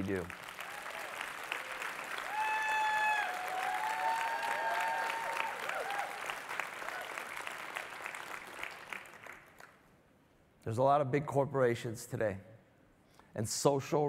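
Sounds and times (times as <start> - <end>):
audience applauding: 0.0 - 9.8
people cheering: 0.6 - 8.2.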